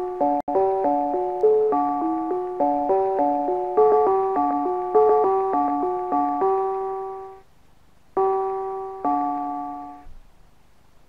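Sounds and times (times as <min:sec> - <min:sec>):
brass bells chiming a tune: 0:00.0 - 0:07.4.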